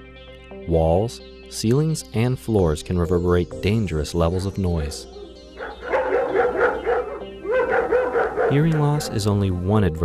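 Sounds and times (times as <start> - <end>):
dog barking: 5.2 - 9.4.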